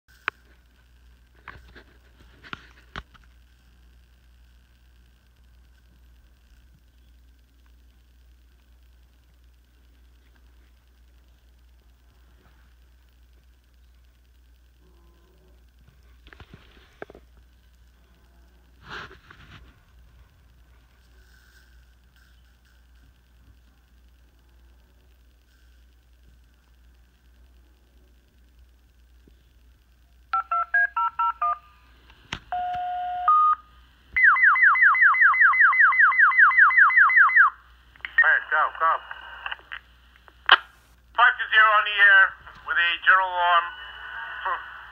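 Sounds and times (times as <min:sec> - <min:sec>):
steady radio tone: 0:34.2 - 0:44.9
dispatcher speaking: 0:37.4 - 0:39.8, 0:41.1 - 0:44.9.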